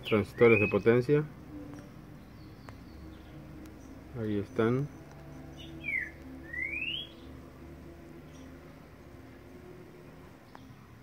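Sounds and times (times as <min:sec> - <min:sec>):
bird whistled call: 0:00.0 - 0:00.9, 0:05.6 - 0:07.3.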